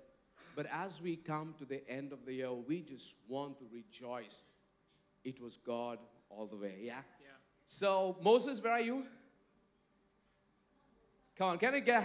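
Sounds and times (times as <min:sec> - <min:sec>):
man's voice: 0:00.5 - 0:04.4, 0:05.3 - 0:07.1, 0:07.7 - 0:09.2, 0:11.4 - 0:12.0.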